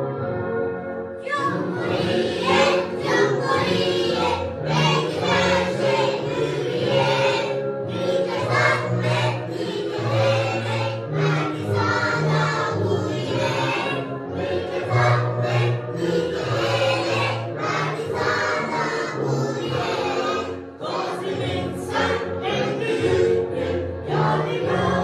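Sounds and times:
instrumental accompaniment: 0.0s - 25.0s
children singing: 1.2s - 25.0s.

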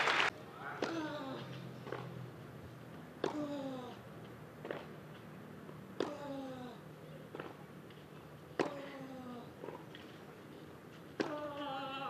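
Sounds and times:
tennis ball racket hits: 3.2s - 3.8s, 5.9s - 6.4s, 7.2s - 10.2s, 11.0s - 11.9s.

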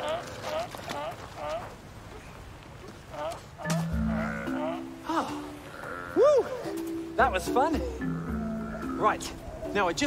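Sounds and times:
sea lions calling: 0.0s - 10.0s
background music low notes: 3.6s - 10.0s.

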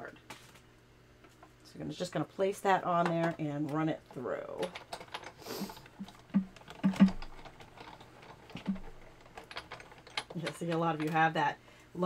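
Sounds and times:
die-cutting machine gears clicking: 3.0s - 11.4s.

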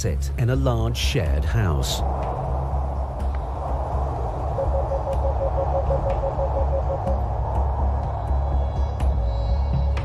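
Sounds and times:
low rumble: 0.3s - 10.0s.

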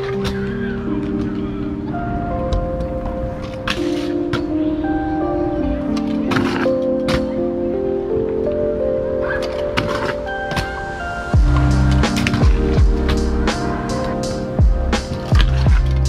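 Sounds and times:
melodic tones: 0.0s - 16.0s
deep sliding bass: 11.4s - 16.0s
sharp percussion: 11.4s - 16.0s.

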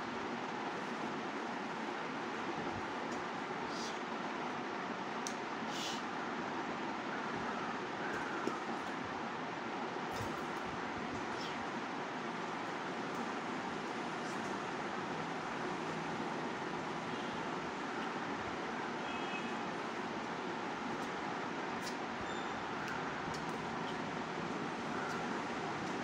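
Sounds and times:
steady background noise: 0.0s - 26.0s.

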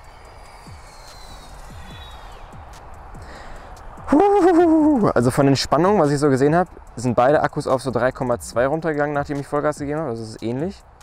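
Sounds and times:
loud wavering tone: 0.0s - 3.2s
quadcopter propeller whine: 0.0s - 4.2s
hiss: 0.0s - 5.1s.

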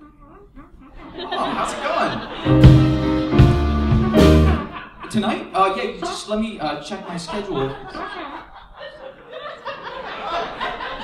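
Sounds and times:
audience laughing: 0.9s - 11.0s.

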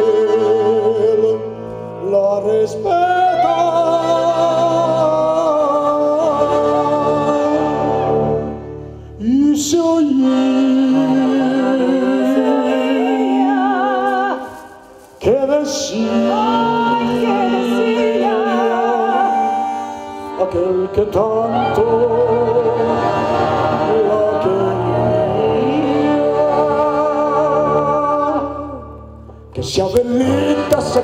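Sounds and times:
cello: 0.0s - 31.0s
accordion: 3.0s - 31.0s.

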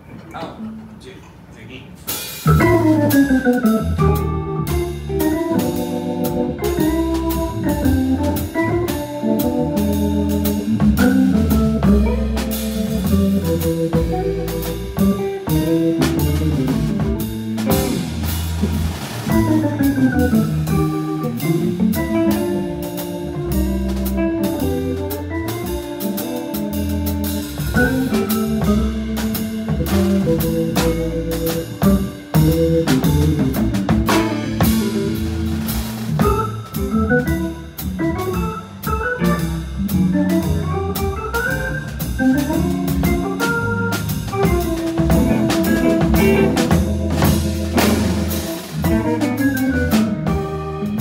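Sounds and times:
drum kit with cymbal strokes: 1.9s - 51.0s
low bass line: 2.4s - 51.0s
organ playing sustained chords: 2.5s - 18.4s, 19.4s - 51.0s.

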